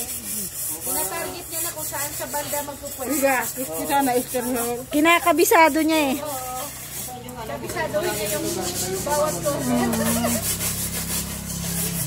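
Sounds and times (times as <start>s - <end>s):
hose spray hissing on tiles: 0.0s - 12.0s.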